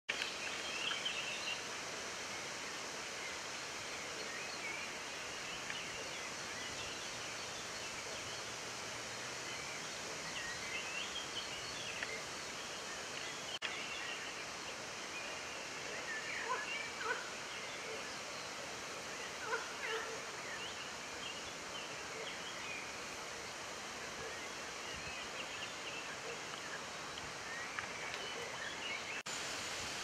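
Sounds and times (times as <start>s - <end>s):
outdoor background hiss: 0.1s - 30.0s.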